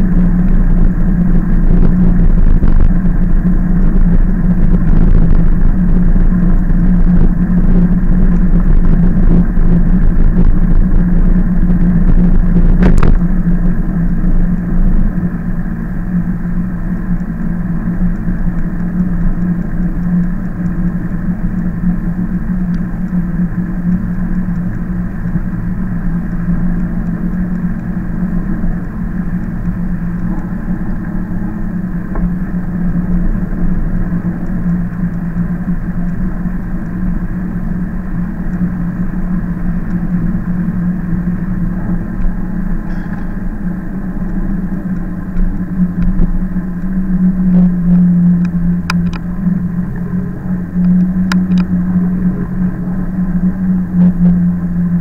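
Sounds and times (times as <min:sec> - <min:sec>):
low motor hum: 0:00.0 - 0:55.0
wind noise: 0:00.0 - 0:55.0.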